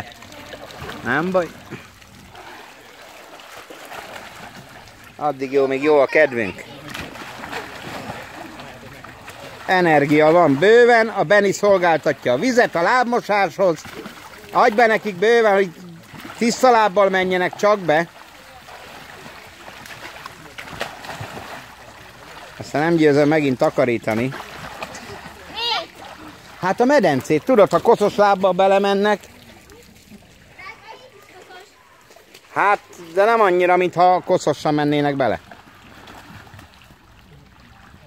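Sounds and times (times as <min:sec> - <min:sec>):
water splashing and trickling: 0:00.0 - 0:38.0.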